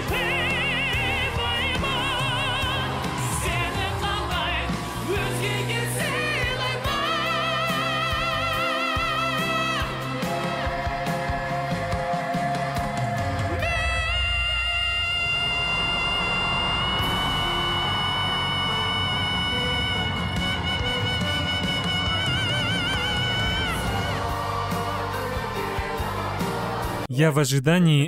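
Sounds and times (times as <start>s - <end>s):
crowd cheering: 0.0s - 27.1s
live pop band: 0.0s - 27.1s.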